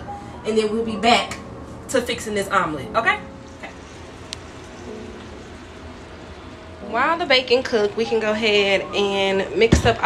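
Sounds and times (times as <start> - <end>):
bacon sizzling in a frying pan: 3.4 - 10.0.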